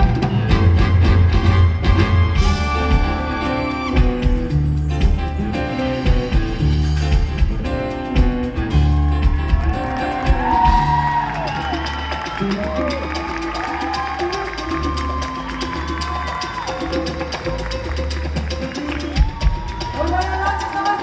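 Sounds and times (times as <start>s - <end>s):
live band playing amplified music: 0.0s - 21.0s
audience cheering and whooping: 8.6s - 21.0s.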